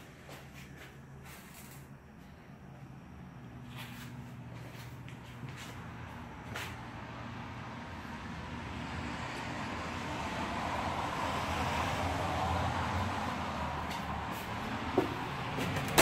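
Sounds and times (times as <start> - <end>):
vehicle driving past: 3.3 - 16.0.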